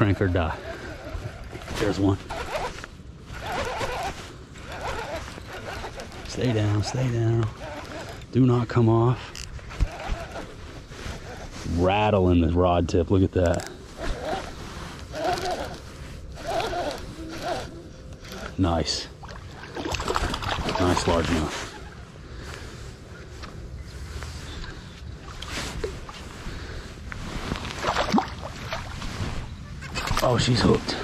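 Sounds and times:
fishing reel whirring: 0.1 - 8.3, 9.3 - 11.5, 13.6 - 18.6.

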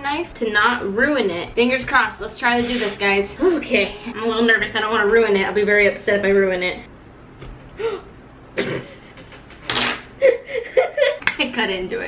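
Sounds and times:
woman gasping: 7.8 - 8.1.

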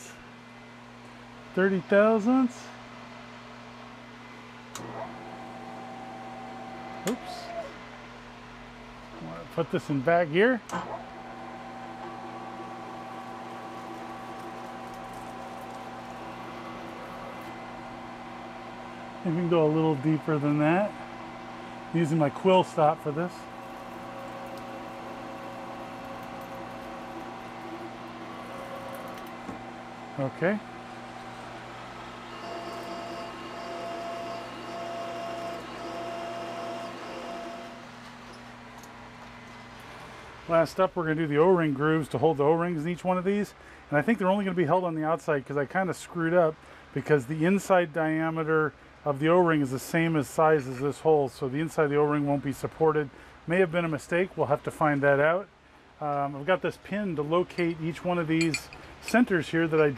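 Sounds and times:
milling machine cutting metal: 10.7 - 37.9.

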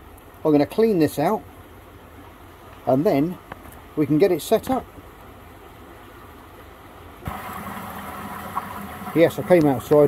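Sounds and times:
water rushing through pond filter: 7.2 - 10.0.

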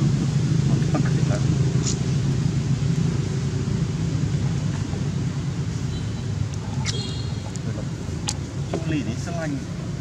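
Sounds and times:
low mechanical hum: 0.0 - 10.0.

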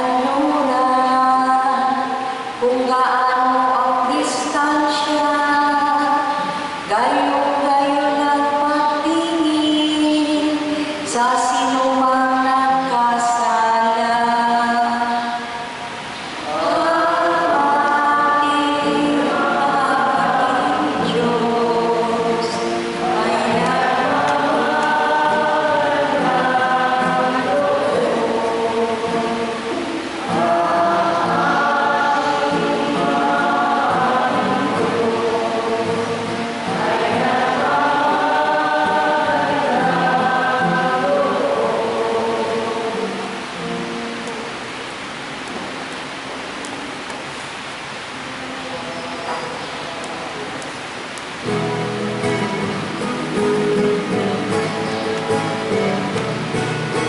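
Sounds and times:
woman singing a chant amplified: 0.0 - 15.8, 16.4 - 43.6
steady hiss: 0.0 - 57.0.

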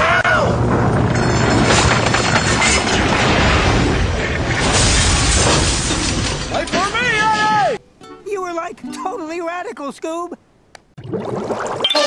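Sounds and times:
cartoon rumbling clatter: 0.6 - 6.9.

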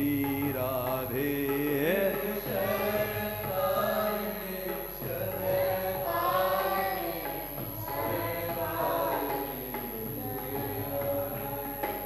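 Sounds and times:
musical accompaniment: 0.0 - 12.0
voices singing devotional song: 0.0 - 12.0.

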